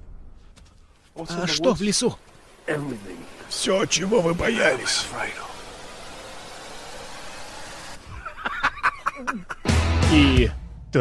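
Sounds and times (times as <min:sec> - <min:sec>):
steady hiss: 0:01.1 - 0:09.6.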